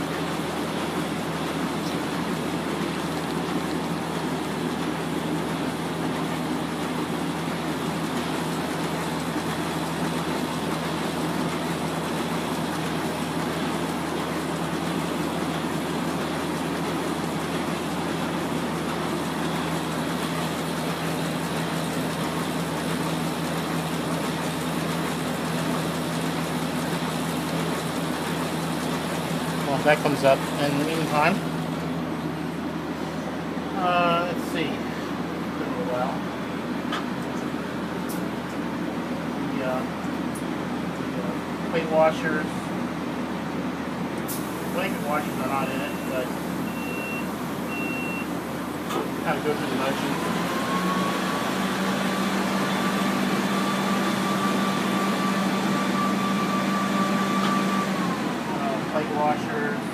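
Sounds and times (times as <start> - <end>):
printing press mechanical hum: 0.0 - 59.9
electronic warning beeps: 45.8 - 48.3.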